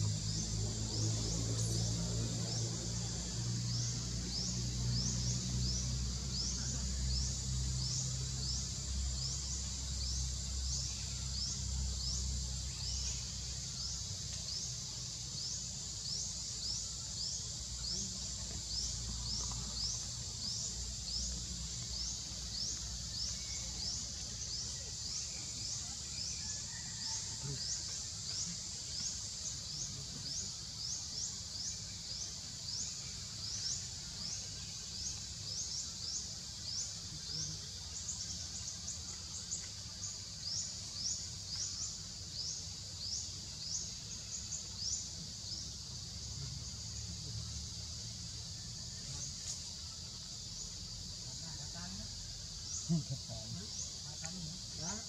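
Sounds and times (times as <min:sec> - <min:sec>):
insect chorus chirping: 0:00.0 - 0:55.0.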